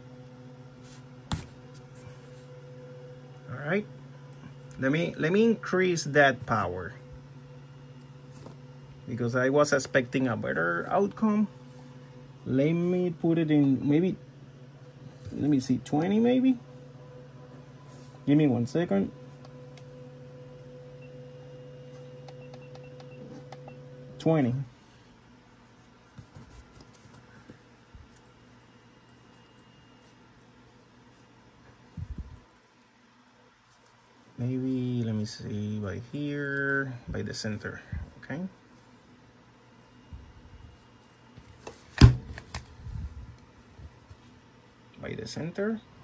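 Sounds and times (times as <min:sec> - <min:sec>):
low electrical hum with whine: 0:00.0 - 0:46.0.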